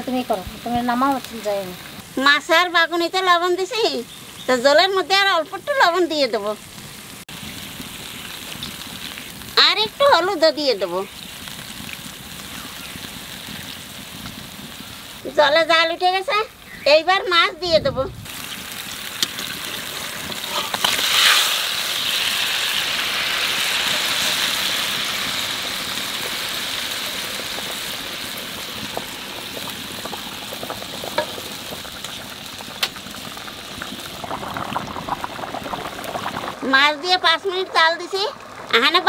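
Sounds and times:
curry boiling and bubbling: 0:00.0 - 0:17.4, 0:18.2 - 0:39.0.

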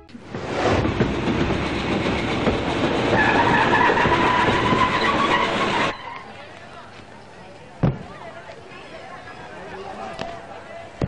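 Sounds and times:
train rumble: 0:00.0 - 0:06.7.

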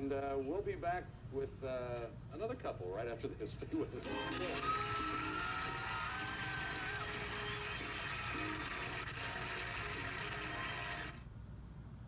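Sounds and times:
studio audience applause: 0:04.0 - 0:11.2
tv show bumper music: 0:04.0 - 0:11.2.

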